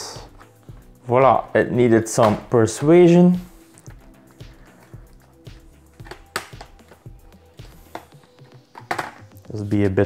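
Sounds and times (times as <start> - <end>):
quiet background music: 0.0 - 10.0
plastic clips clicking and snapping: 6.0 - 7.0.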